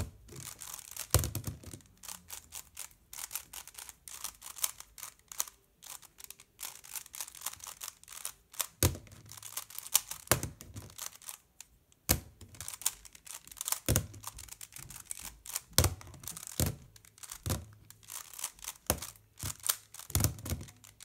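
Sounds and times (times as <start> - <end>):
plastic puzzle cube clicking: 0.0 - 21.0.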